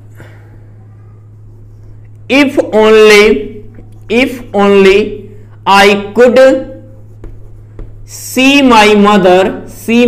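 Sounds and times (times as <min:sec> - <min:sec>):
person speaking: 0:00.8 - 0:10.0
chalk tapping and scratching: 0:01.2 - 0:02.7, 0:05.8 - 0:09.8.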